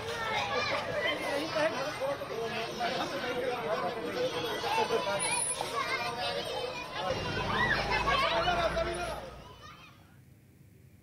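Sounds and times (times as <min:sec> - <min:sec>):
children and adults shouting: 0:00.0 - 0:10.1.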